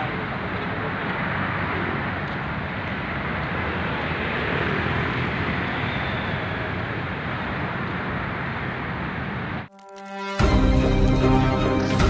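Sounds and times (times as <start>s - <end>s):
car engines and tyres passing: 0.0s - 9.7s.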